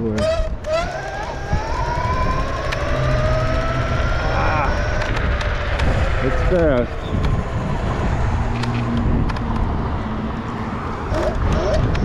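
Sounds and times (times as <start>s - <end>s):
electric motor whining: 0.0s - 7.6s, 11.1s - 12.0s
road rumble: 0.0s - 12.0s
wind: 0.0s - 12.0s.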